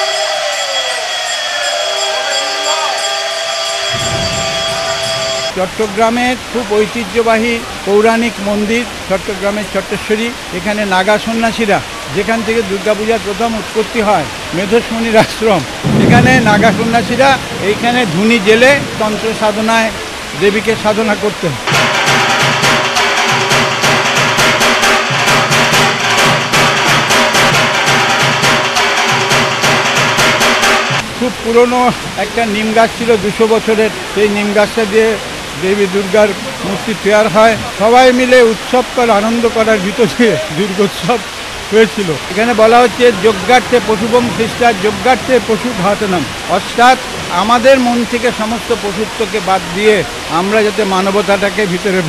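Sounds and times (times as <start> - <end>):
conch shell blown: 0.0 - 5.5
barrel drum beaten with sticks: 4.0 - 5.5, 21.7 - 31.1.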